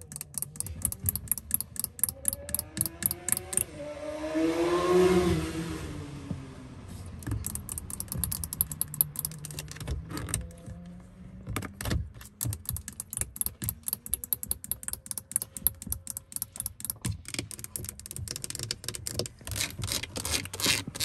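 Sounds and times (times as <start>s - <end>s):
fingernails tapping on plastic: 11.6s - 19.4s.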